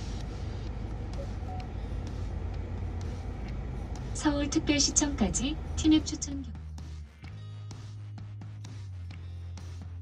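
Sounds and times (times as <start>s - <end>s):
idling car low rumble: 0.0s - 9.9s.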